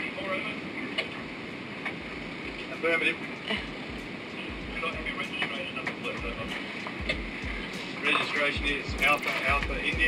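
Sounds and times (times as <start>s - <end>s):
radio background noise: 0.0s - 10.0s.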